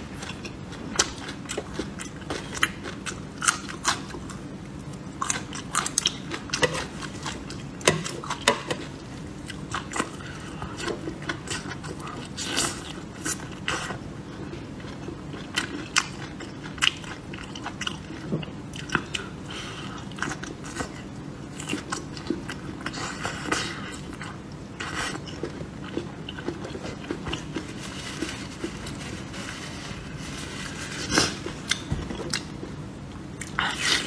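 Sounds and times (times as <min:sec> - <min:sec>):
chewing chili pepper: 0:00.2 - 0:28.9.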